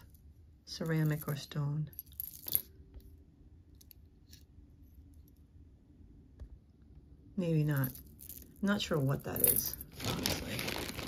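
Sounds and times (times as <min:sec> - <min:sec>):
beads clinking on metal pieces: 0:00.0 - 0:02.8, 0:07.6 - 0:11.0.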